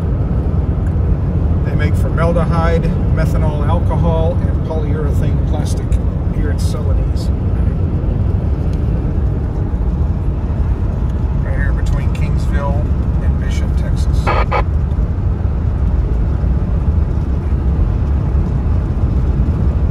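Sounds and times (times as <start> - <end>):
road and engine rumble inside car: 0.0 - 19.9.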